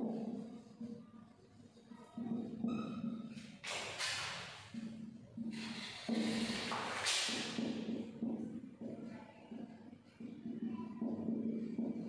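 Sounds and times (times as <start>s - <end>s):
marker squeak: 2.6s - 3.3s
marker pen scratching on whiteboard: 5.5s - 8.4s.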